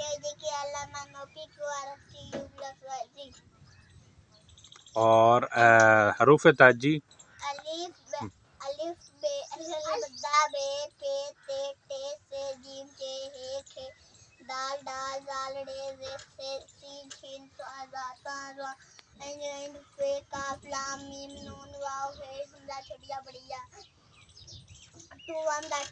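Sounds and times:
boy singing chant-like tune: 0.0s - 3.4s, 7.4s - 23.8s.

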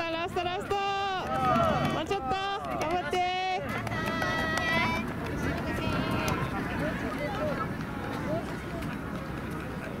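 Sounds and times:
runners' footsteps jogging: 0.8s - 10.0s.

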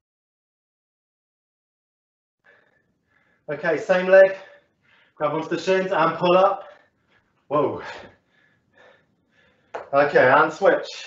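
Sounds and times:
faint breath: 2.4s - 3.5s, 4.3s - 5.2s, 6.6s - 9.8s
man speaking: 3.5s - 4.6s, 5.2s - 6.8s, 7.5s - 8.2s, 9.8s - 11.0s.

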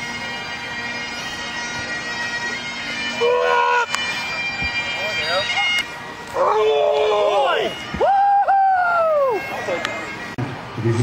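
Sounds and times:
bagpipes playing drone and tune: 0.0s - 11.0s.

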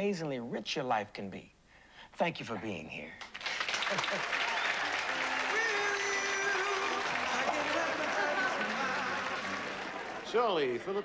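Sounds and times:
audience applauding and cheering: 3.2s - 11.0s.

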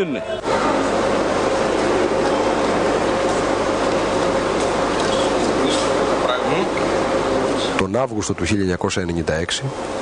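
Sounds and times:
constant hum: 0.0s - 10.0s.

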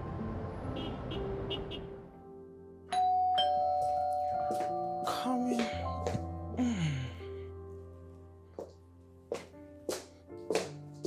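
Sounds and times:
background music: 0.0s - 11.0s
two-tone doorbell chime: 2.9s - 6.3s.

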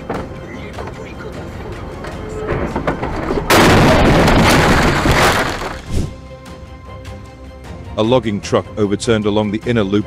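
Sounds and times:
vehicle collision crash: 2.5s - 6.1s.

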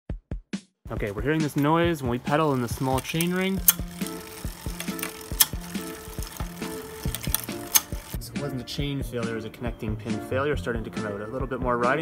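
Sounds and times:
background music: 0.9s - 12.0s
bicycle chain clicks: 2.4s - 8.2s.

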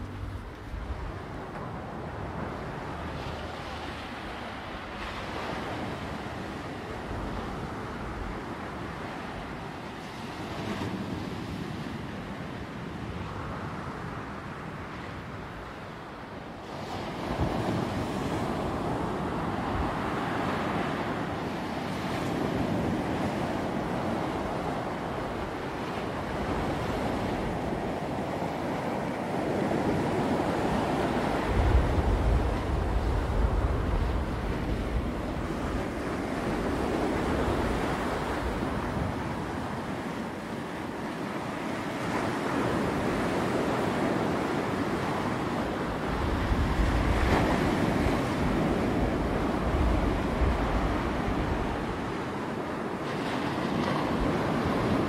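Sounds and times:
wind rumbling on microphone: 0.0s - 55.0s
sea surf breaking: 16.6s - 55.0s.

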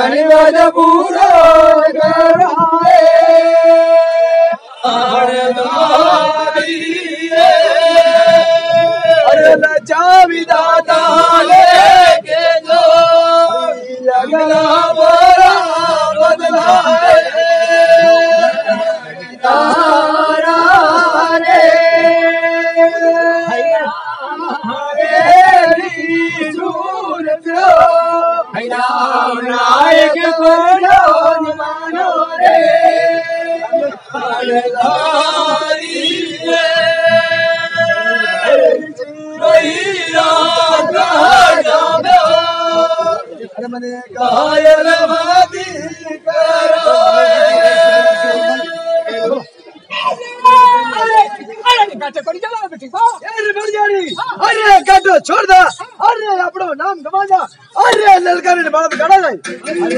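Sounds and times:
men singing together: 0.0s - 49.6s.

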